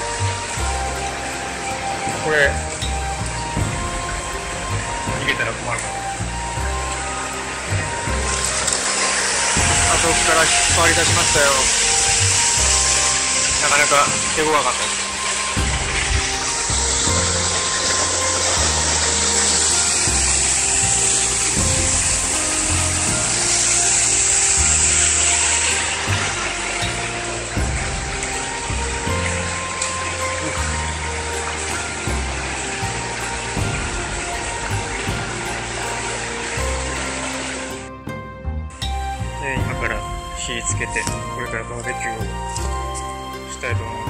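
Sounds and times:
background music with low notes: 0.0s - 44.0s
waterfall rushing: 0.0s - 44.0s.

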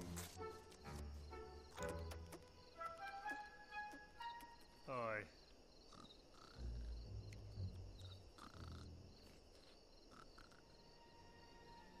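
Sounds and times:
crickets chirping: 0.4s - 12.0s.

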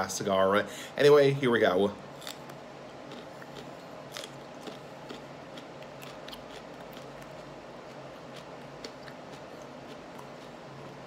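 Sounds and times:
pepper being bitten and chewed: 2.2s - 10.6s.

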